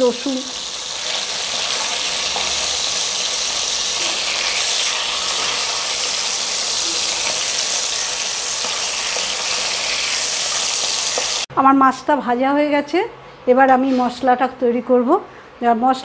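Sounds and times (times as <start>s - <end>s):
spices sizzling in a pan: 0.0s - 11.5s.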